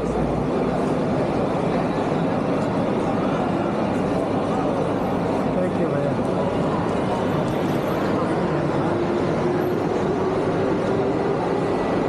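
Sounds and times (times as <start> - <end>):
indistinct crowd voices: 0.0 - 12.0.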